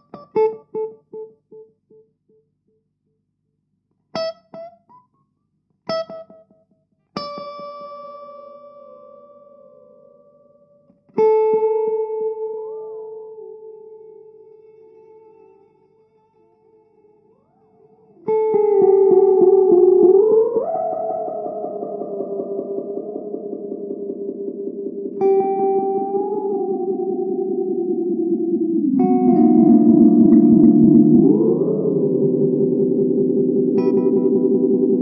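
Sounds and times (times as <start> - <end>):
electric guitar chords with echo: 17.4 - 35.0.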